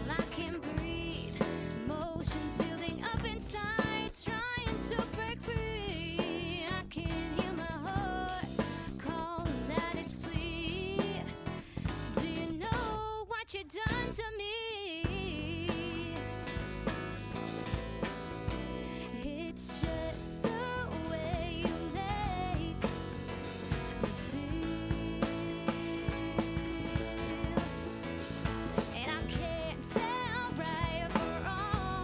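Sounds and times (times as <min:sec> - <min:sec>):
electric bass: 0:00.0 - 0:13.1, 0:15.0 - 0:32.0
drum kit: 0:00.0 - 0:14.4, 0:15.0 - 0:32.0
woman singing: 0:00.0 - 0:16.6, 0:18.9 - 0:32.0
strummed acoustic guitar: 0:16.1 - 0:32.0.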